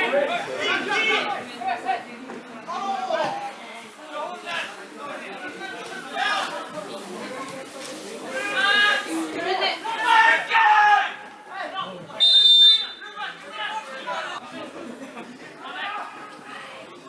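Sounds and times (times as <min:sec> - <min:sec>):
players shouting in echoing hall: 0:08.3 - 0:14.4
referee's whistle blast: 0:12.2 - 0:13.0.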